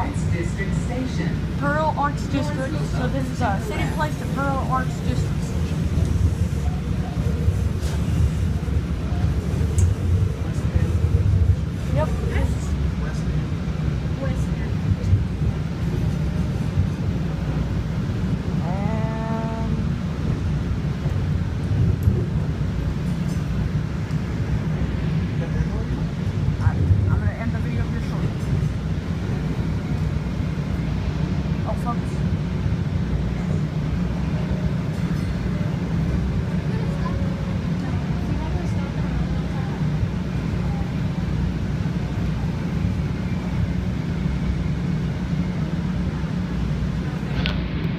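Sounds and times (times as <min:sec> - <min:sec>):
light rail train rumbling: 0:00.0 - 0:47.9.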